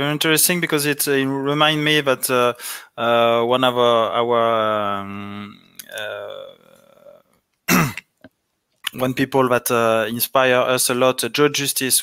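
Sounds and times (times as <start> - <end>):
person clearing throat: 5.1 - 8.2.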